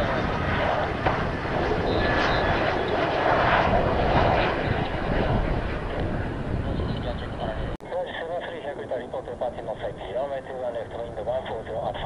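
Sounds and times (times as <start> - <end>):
jet engine roar: 0.0 - 12.0.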